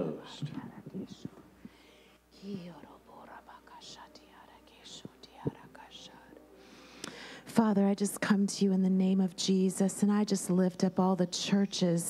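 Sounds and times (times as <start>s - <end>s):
person whispering prayer: 0.0s - 1.4s, 2.4s - 6.4s.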